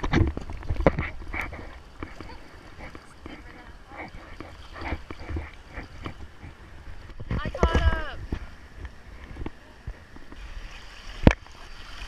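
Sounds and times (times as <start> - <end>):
sea water lapping and sloshing: 0.0 - 12.0.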